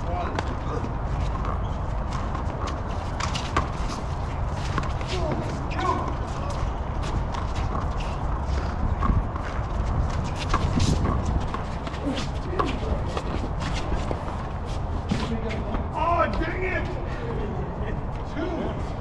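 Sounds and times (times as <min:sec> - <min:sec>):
shoes scuffing on court: 0:00.0 - 0:16.6.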